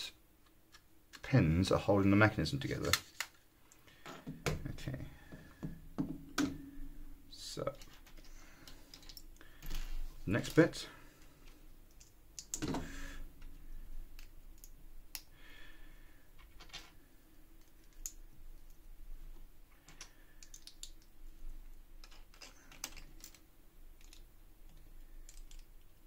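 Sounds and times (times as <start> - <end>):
plastic bricks clicking: 19.9 - 21.1, 22.0 - 23.4, 24.0 - 25.8.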